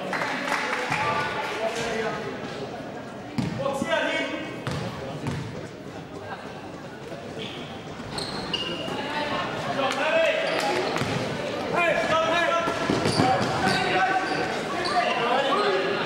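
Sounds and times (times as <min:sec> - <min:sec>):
sneakers squeaking on court: 0:03.4 - 0:03.6, 0:04.6 - 0:05.6, 0:07.4 - 0:09.1, 0:10.4 - 0:11.4, 0:12.7 - 0:15.7
basketball bouncing: 0:04.6 - 0:05.5.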